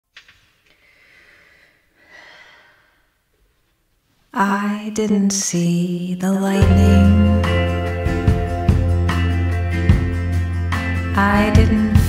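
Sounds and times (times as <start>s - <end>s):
faint breathing: 0.7s - 3.2s.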